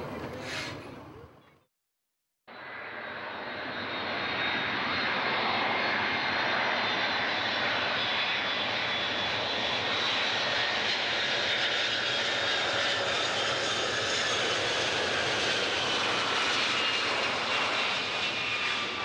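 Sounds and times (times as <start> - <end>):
jet airliner engines rushing: 0.0 - 1.4, 2.6 - 19.0.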